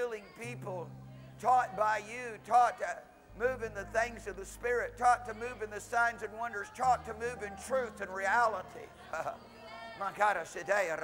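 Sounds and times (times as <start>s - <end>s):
man speaking: 0.0s - 9.4s, 10.0s - 11.0s.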